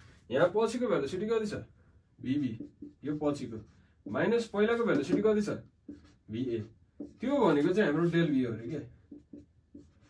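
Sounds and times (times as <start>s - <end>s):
man speaking: 0.3s - 5.7s, 6.3s - 9.0s
marker writing on whiteboard: 2.2s - 10.0s.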